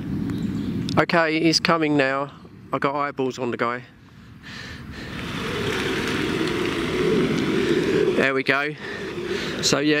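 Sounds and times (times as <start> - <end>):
van driving past: 5.0 - 9.8.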